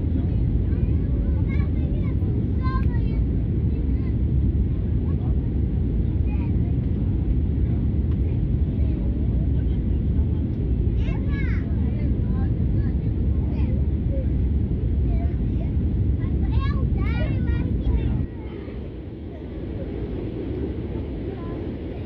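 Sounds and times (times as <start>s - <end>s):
airliner cabin engine rumble: 0.0s - 22.0s
faint passenger voices: 0.0s - 22.0s.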